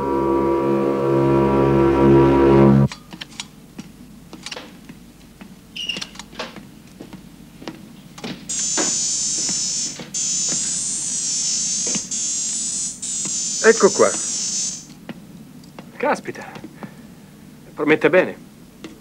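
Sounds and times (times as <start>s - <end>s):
high-pitched electronic whine: 0.0s - 2.9s, 8.5s - 15.0s.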